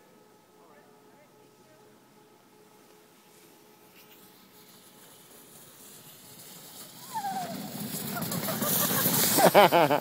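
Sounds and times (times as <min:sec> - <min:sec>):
snow tube sliding on snow: 0:03.2 - 0:10.0.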